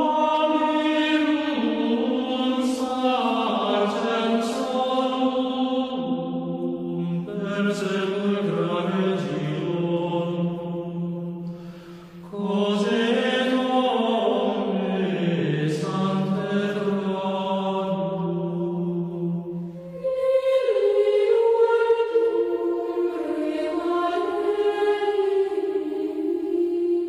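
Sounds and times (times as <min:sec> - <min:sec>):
sacred vocal chant: 0:00.0 - 0:27.0.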